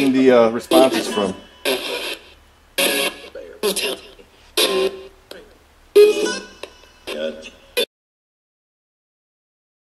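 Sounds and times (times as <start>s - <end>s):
chopped radio speech and music: 0.0s - 6.4s, 7.0s - 7.9s.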